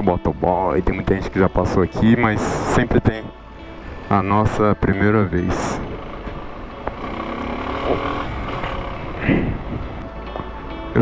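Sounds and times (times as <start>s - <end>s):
road and wind noise: 0.0s - 11.0s
surrounding cars: 0.0s - 11.0s
motorcycle engine running: 4.9s - 10.0s.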